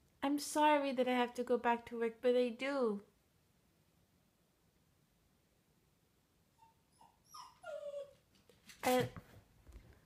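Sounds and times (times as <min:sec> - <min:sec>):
woman speaking: 0:00.2 - 0:03.1, 0:08.8 - 0:09.2
dog whimpering: 0:06.6 - 0:08.2.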